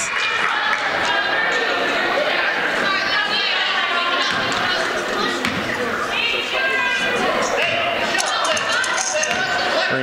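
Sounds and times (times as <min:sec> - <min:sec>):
background voices: 0:00.0 - 0:10.0.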